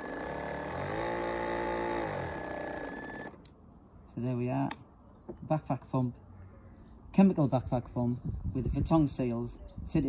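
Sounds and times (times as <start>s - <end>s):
sprayer pump motor hum: 0.0s - 3.5s.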